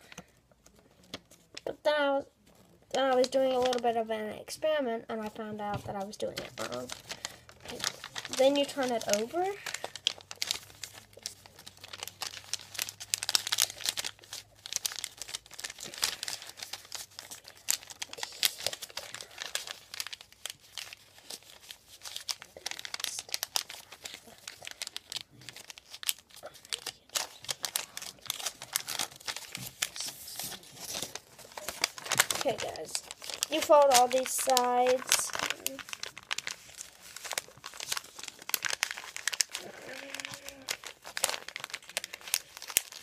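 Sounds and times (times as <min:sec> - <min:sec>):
paper crinkling and rustling: 0:00.0 - 0:01.7, 0:02.3 - 0:04.1, 0:05.1 - 0:43.0.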